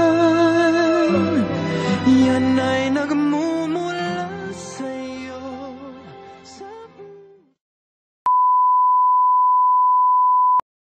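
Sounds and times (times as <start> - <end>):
steady test tone beep: 8.3 - 10.6.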